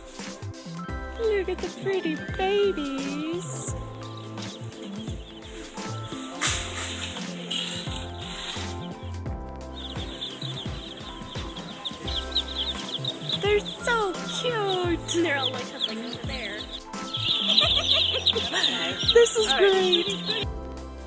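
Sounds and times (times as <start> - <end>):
background music: 0.0 - 21.0
baby chicks peeping: 1.2 - 20.6.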